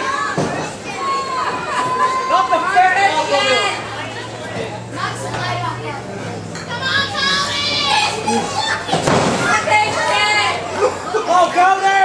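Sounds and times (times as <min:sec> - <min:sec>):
children's voices shouting: 0:00.0 - 0:12.0
crowd yelling and shouting: 0:00.0 - 0:12.0.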